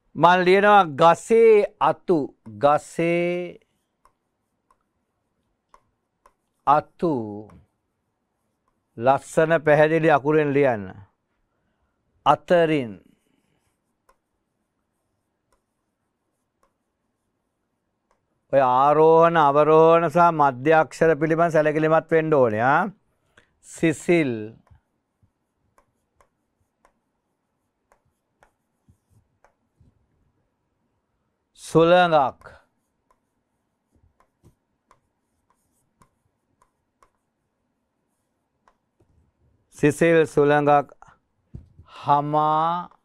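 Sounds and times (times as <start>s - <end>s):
stylus tapping on tablet screen: 3.8s - 6.6s, 13.1s - 17.3s, 18.0s - 18.4s, 24.6s - 30.4s, 32.4s - 39.4s.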